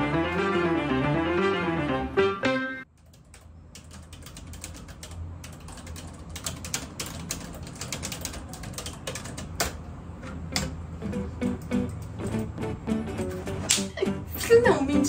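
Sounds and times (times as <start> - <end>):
typing on computer keyboard: 2.9 - 9.8.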